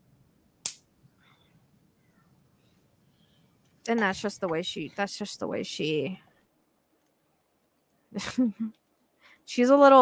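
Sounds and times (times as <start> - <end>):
sharp click: 0.6 - 0.9.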